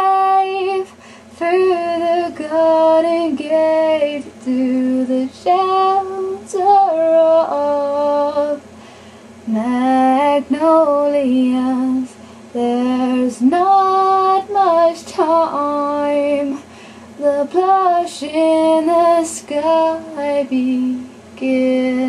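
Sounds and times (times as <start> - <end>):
woman singing unaccompanied: 0.0 - 8.7, 9.4 - 22.0.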